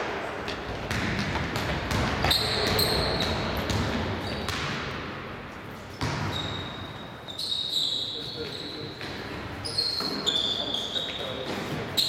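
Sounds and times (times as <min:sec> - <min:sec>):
basketball bouncing on court: 0:00.0 - 0:05.2, 0:06.0 - 0:07.0
sneaker squeaks on gym floor: 0:01.9 - 0:04.7, 0:05.9 - 0:12.0.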